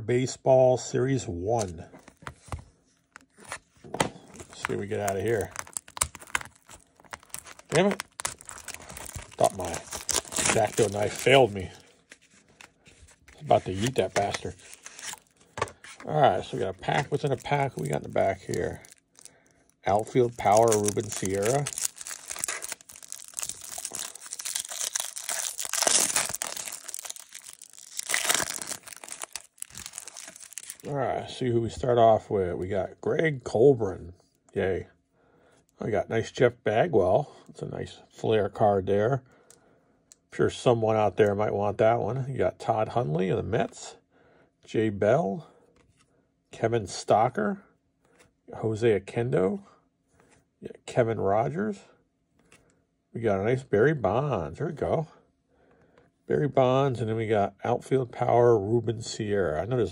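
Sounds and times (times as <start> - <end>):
shrink-wrap crinkling and tapping: 1.6 - 30.9.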